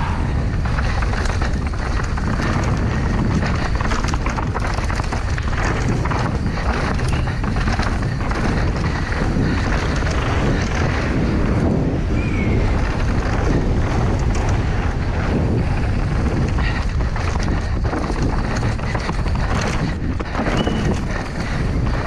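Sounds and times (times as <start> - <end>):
bike rattling and clattering: 0.0 - 22.0
tyres rumbling over dirt: 0.0 - 22.0
wind rushing over microphone: 0.0 - 22.0.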